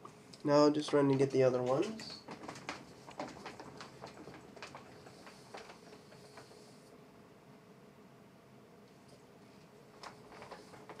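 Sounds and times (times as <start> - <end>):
faint steady hum: 0.0 - 11.0
wheelchair clicks and taps on wood: 0.8 - 6.5, 10.0 - 11.0.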